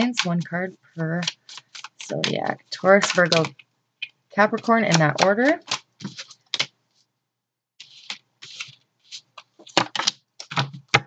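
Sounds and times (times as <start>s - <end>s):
cards shuffling and rustling: 0.0s - 3.6s, 4.6s - 7.0s, 7.8s - 11.0s.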